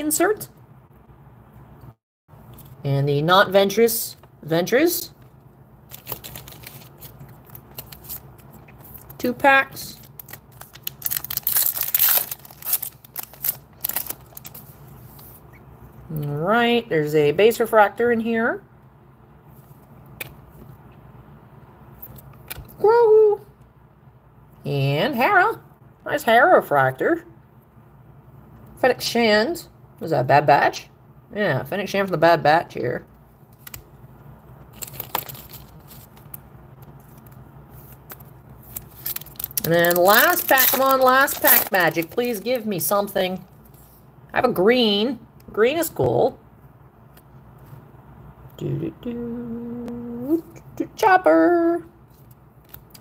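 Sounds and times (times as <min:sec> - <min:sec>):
faint steady low hum: 0:00.0 - 0:53.0
foil wrapper tearing and crinkling: 0:05.9 - 0:09.2, 0:09.9 - 0:14.7, 0:34.7 - 0:36.4, 0:38.0 - 0:42.6.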